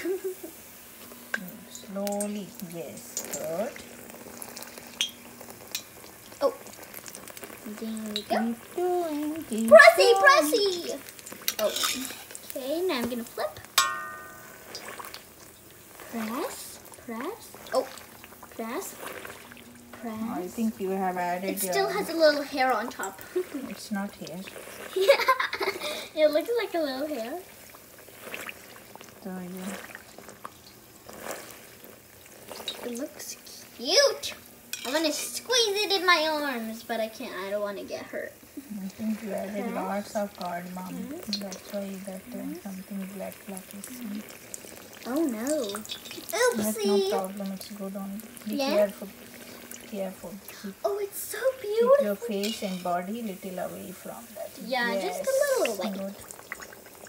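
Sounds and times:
hot oil sizzling: 0.0s - 57.0s
metal skimmer tapping pan: 1.0s - 3.9s, 13.0s - 15.5s.

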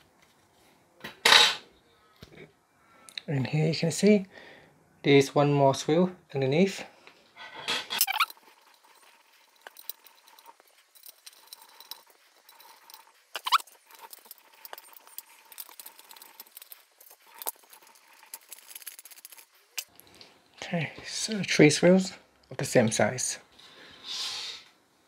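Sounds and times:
screwdriver scratching and ticking: 8.0s - 19.9s.

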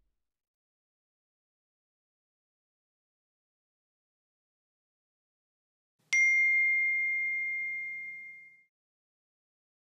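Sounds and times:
bright bell-like ding: 6.1s - 8.7s.

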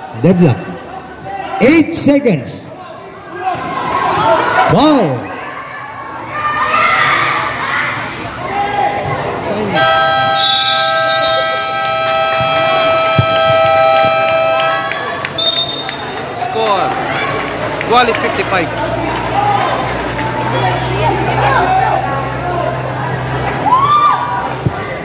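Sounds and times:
crowd voices: 0.0s - 25.0s
long electronic buzzer: 9.7s - 15.0s.

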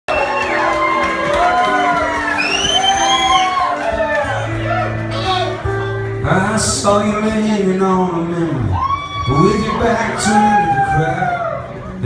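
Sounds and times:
audience whooping and cheering: 0.1s - 5.6s, 8.6s - 12.0s
acoustic guitar playing: 0.1s - 12.0s.

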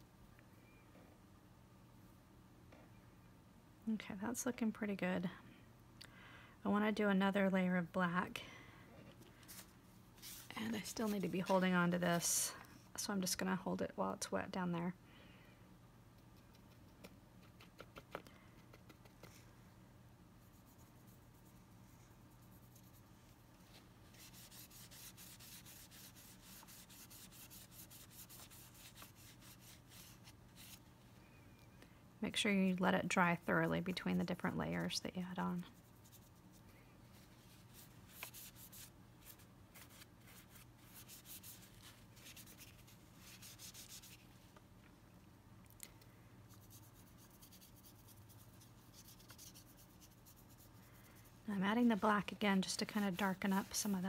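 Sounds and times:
low steady hum: 0.0s - 54.0s
rubbing strokes on broomstick: 24.0s - 30.8s, 37.2s - 44.3s.

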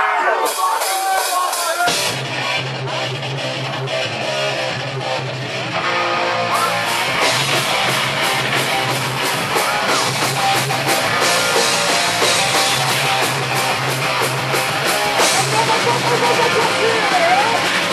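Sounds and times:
bass guitar: 0.0s - 17.9s
drums with crashing cymbals: 0.4s - 3.6s, 6.6s - 17.9s
electric guitar: 1.9s - 17.9s.

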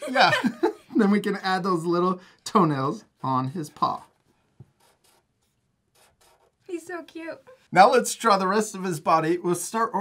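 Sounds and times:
marker scratching on paper: 3.0s - 7.7s.

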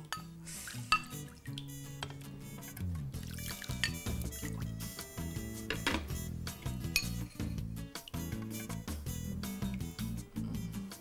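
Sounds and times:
background music: 0.0s - 11.0s
metal utensil clinking on dish: 7.0s - 7.4s.

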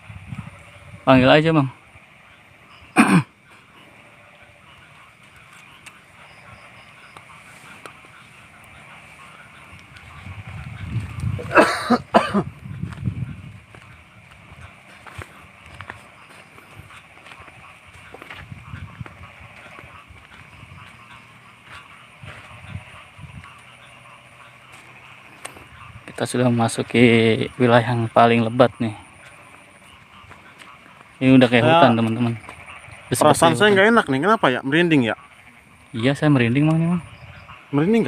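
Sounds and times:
high-pitched insect drone: 12.6s - 38.0s
footfalls through undergrowth: 12.8s - 22.6s.

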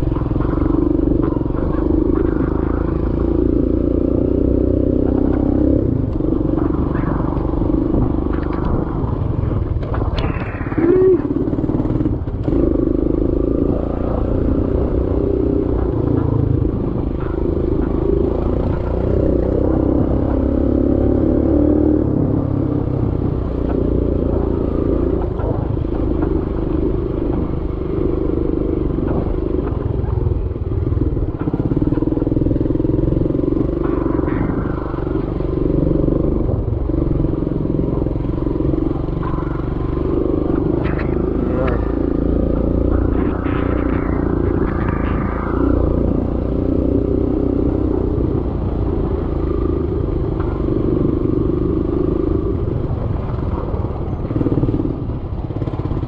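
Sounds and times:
small motorcycle engine running: 0.0s - 56.0s.

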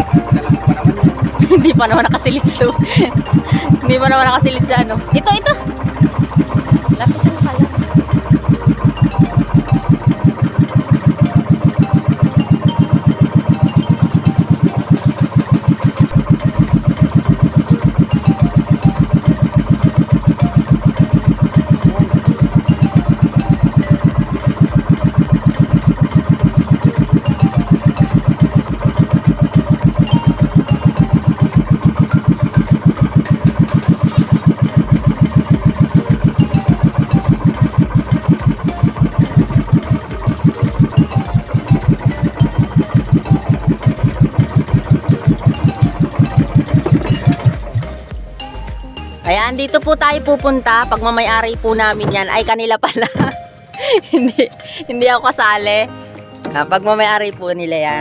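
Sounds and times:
boat engine running: 0.0s - 58.0s.

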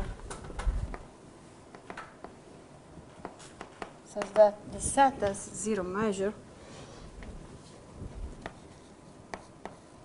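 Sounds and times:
light taps and clicks on board: 8.4s - 8.6s.

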